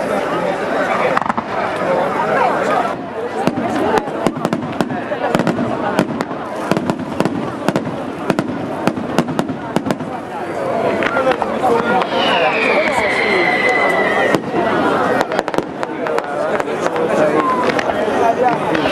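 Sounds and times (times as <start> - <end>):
crowd voices: 0.0 - 18.9
fireworks bangs and crackles: 0.0 - 18.9.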